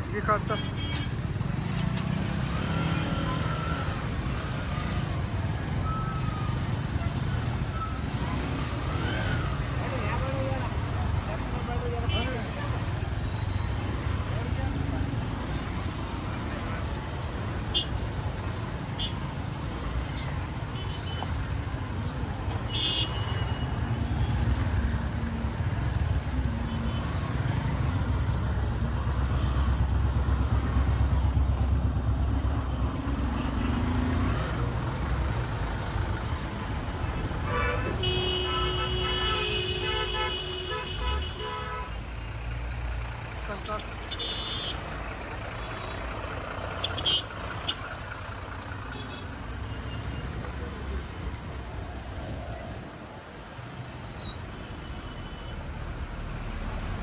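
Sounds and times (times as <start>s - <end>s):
low engine rumble of traffic: 0.0s - 57.0s
vehicle horn honking: 37.4s - 42.0s, 44.1s - 44.8s.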